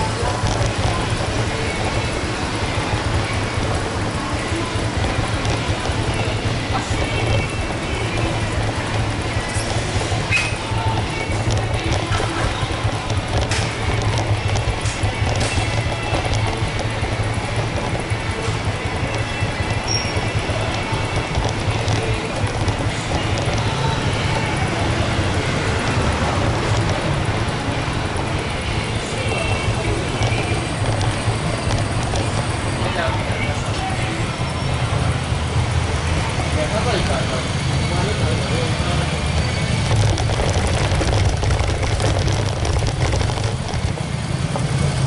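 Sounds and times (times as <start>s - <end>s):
background music: 0.0s - 45.0s
faint voices: 0.0s - 45.0s
street noise: 0.0s - 45.0s.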